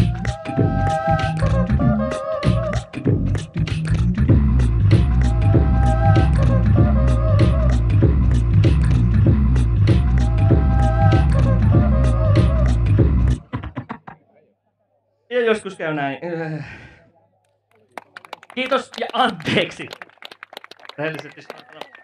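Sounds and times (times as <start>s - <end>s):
beatbox mouth percussion: 0.0s - 14.2s
heavy bass pulse: 3.0s - 13.5s.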